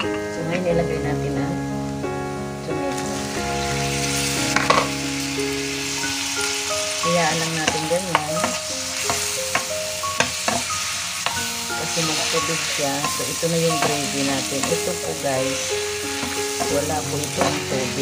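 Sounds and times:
onions sizzling in oil: 2.8s - 18.0s
utensil knocking against pan: 7.6s - 11.4s.

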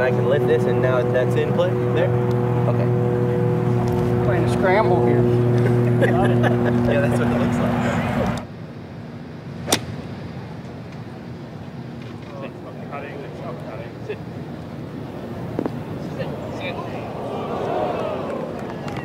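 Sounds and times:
golf club striking ball: 9.6s - 10.0s
murmur of spectators: 15.0s - 19.0s.

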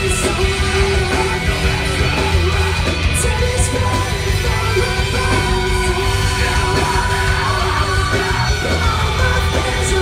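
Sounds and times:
bass guitar: 0.0s - 10.0s
drums: 0.0s - 10.0s
electric guitars: 0.0s - 10.0s
people singing and yelling: 0.0s - 10.0s.

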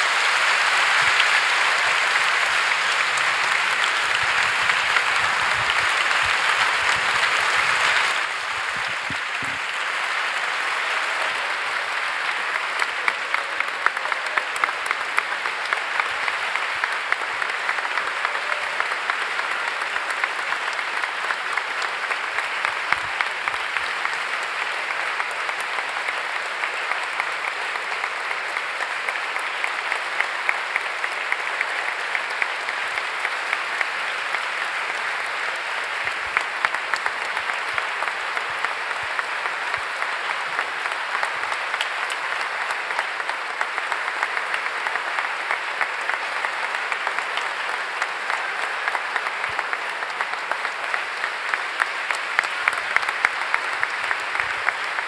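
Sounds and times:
large audience applauding: 0.0s - 55.0s.

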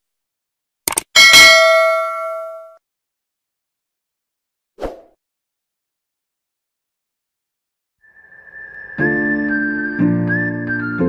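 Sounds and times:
notification bell ding: 1.2s - 2.8s.

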